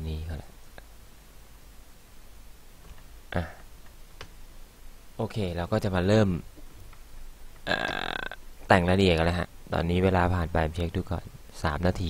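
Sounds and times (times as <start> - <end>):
man speaking: 0.0 - 0.5, 3.3 - 3.6, 5.2 - 6.5, 7.6 - 12.0
man burping: 7.6 - 8.5.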